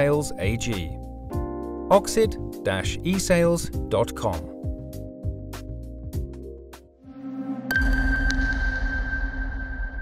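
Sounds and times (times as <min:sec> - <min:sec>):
electronic swell: 0:07.0 - 0:10.0
high ringing tone: 0:07.1 - 0:10.0.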